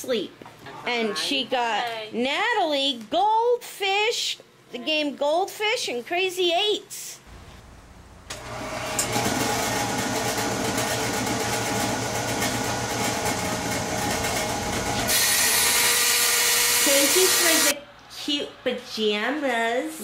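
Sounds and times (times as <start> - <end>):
table saw motor whine: 12.6 - 17.7
saw blade cutting board: 14.8 - 17.7.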